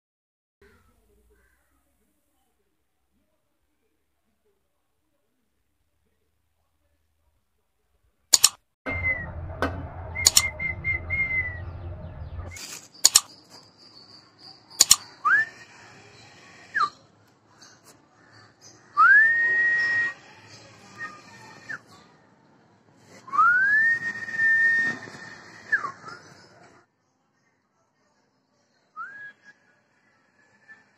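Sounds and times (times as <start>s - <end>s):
sharp clicks: 8.3s - 8.6s, 10.2s - 10.5s, 12.6s - 13.4s, 14.8s - 15.1s
long whistled notes: 8.9s - 12.6s.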